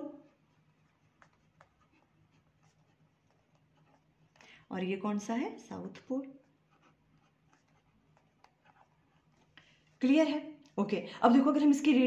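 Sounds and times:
pen scratching on paper: 0.0 - 5.2, 5.8 - 10.3.

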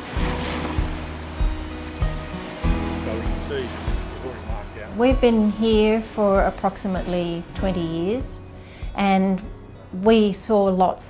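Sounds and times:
surf breaking on a beach: 0.0 - 5.1
music of steady held notes: 0.1 - 11.0.

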